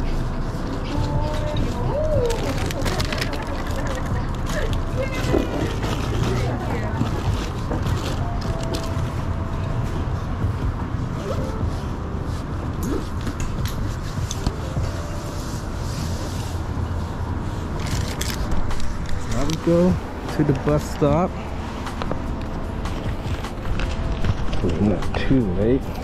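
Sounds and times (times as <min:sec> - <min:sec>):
bag rustling: 0:01.4 - 0:09.5, 0:17.6 - 0:21.1.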